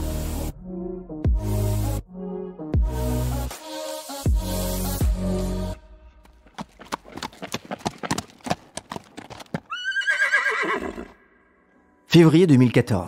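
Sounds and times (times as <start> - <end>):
hooves clip-clopping: 6.3 - 10.3
horse whinny: 9.6 - 11.4.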